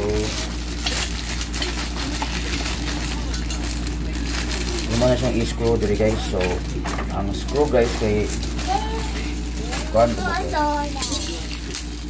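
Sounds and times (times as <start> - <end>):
plastic packet crinkling: 0.0 - 12.0.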